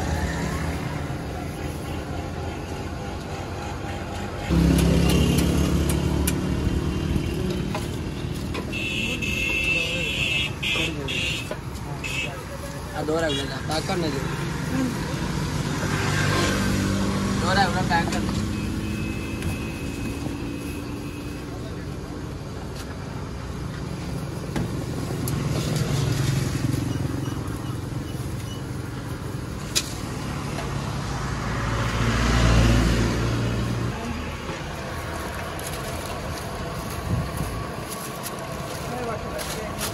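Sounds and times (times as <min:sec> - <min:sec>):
vehicle approaching: 0:00.0 - 0:08.6, 0:11.7 - 0:20.7, 0:21.6 - 0:39.9
vehicle engines running: 0:00.0 - 0:39.9.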